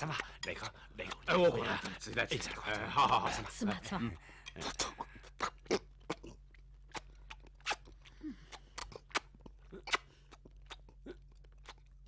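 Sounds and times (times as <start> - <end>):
crunchy chewing: 4.6 - 12.0.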